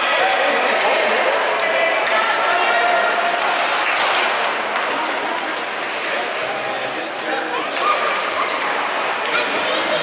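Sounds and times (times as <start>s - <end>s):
echoing crowd babble: 0.0s - 10.0s.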